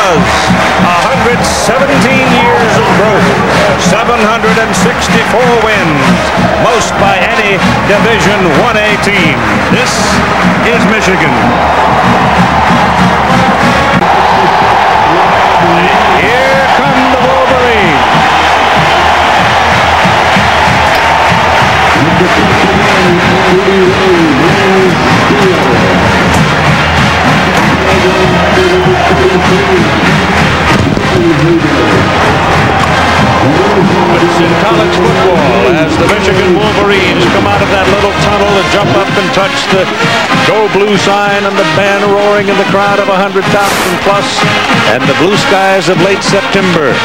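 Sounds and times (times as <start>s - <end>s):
marching band brass playing: 0.0s - 47.0s
stadium crowd cheering: 0.0s - 47.0s.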